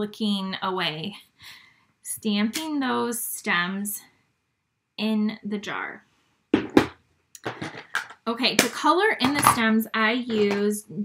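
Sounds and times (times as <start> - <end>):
tools knocking on tabletop: 6.6 - 9.7, 10.3 - 10.7.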